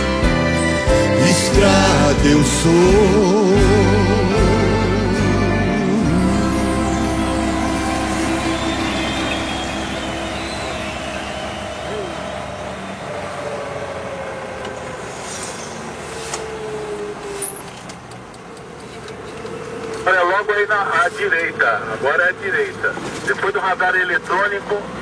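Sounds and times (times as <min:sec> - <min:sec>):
song playing: 0:00.0 - 0:13.2
car engine and road noise: 0:00.0 - 0:25.0.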